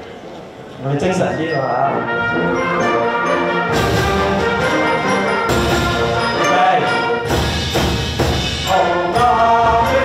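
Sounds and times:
wind band playing: 1.0s - 10.0s.

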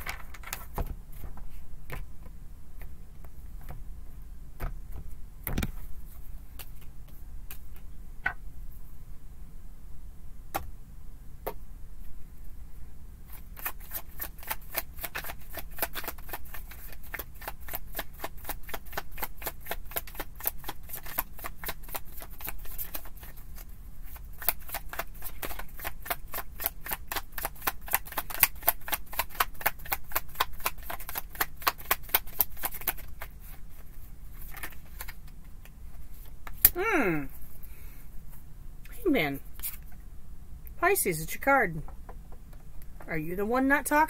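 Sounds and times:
cards being shuffled: 0.0s - 2.0s, 13.3s - 36.8s, 39.5s - 40.0s.

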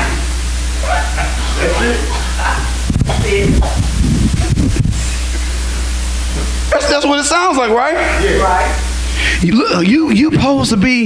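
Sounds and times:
faint murmurs: 0.0s - 6.9s
low hum: 0.0s - 9.6s
steady loud hiss: 0.0s - 11.0s.

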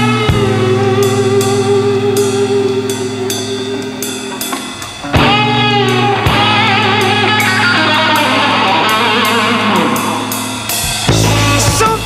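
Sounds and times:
electric guitar lead with bending notes: 0.0s - 12.0s
rock band playing live: 0.0s - 12.0s.

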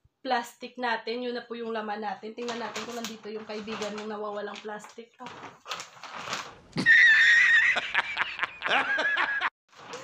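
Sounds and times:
plastic bag rustling: 2.4s - 6.8s, 9.7s - 10.0s
man laughing loudly: 6.8s - 9.5s.

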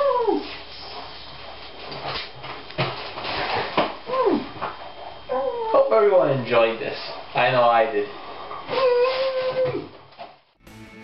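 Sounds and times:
high muffled whimper: 8.7s - 9.9s.

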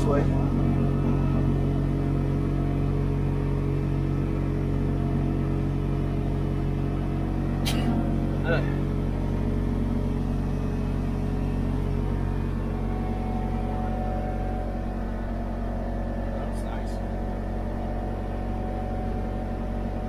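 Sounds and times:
vehicle engine droning: 0.0s - 20.0s.

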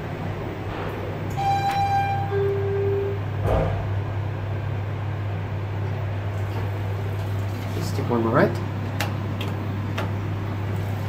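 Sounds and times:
low elevator hum: 0.0s - 11.0s
elevator doors knock: 0.6s - 4.1s
two-note elevator chime: 1.3s - 3.2s.

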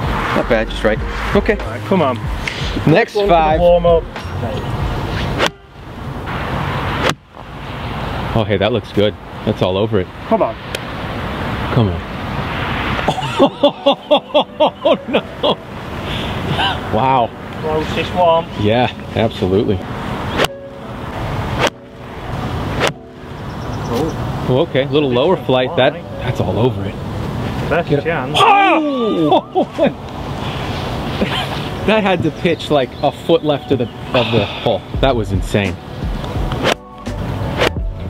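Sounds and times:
golf club striking ball: 21.5s - 21.9s, 22.7s - 23.1s.

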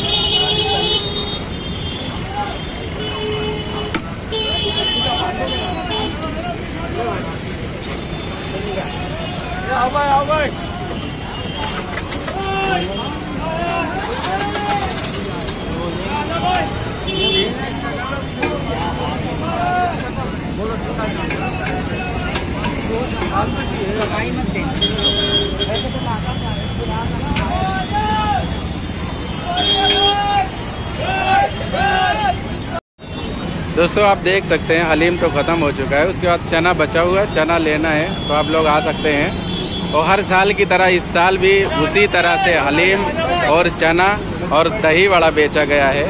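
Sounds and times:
crowd voices: 0.0s - 46.0s
low rumble of street traffic: 0.0s - 46.0s
people talking: 4.4s - 28.5s, 33.8s - 39.4s, 40.0s - 46.0s
people calling out: 29.3s - 32.5s.

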